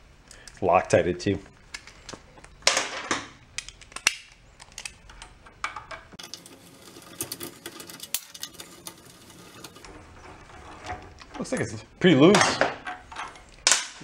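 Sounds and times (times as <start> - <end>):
driver scraping on bolts: 6.2 - 11.8.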